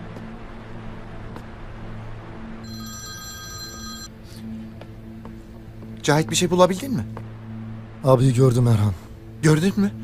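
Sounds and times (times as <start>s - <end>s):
background music drone: 0.0s - 10.0s
telephone ringing: 2.6s - 4.1s.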